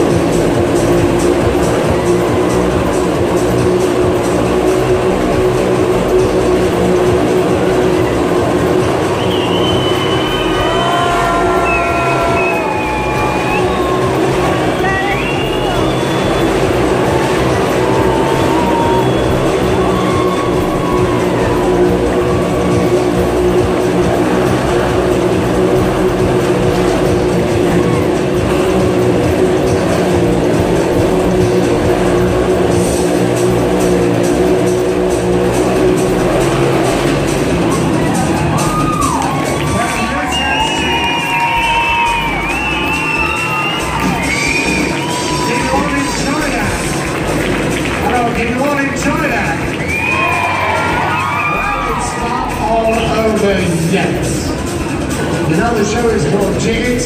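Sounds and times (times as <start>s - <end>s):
loud show music: 0.0s - 57.0s
motorcycle engines running: 0.0s - 57.0s.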